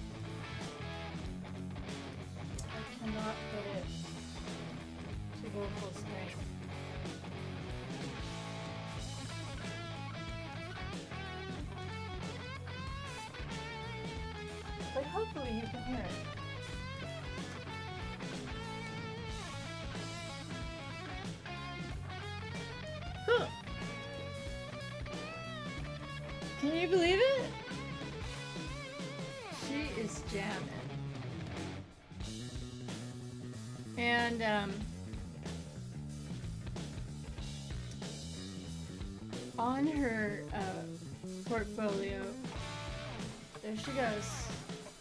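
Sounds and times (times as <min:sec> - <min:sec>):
electric guitar music: 0:00.0 - 0:45.0.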